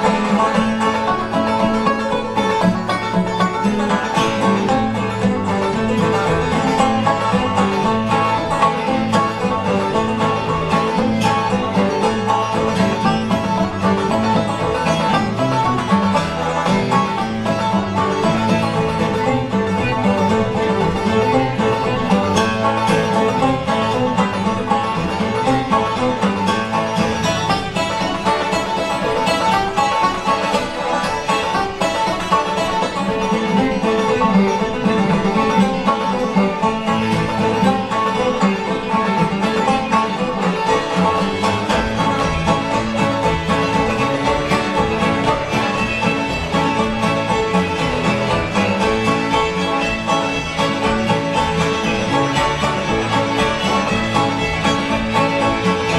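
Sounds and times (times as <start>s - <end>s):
acoustic guitar picking: 0.0s - 55.9s
banjo picking: 0.0s - 55.9s
fiddles playing: 0.0s - 55.9s.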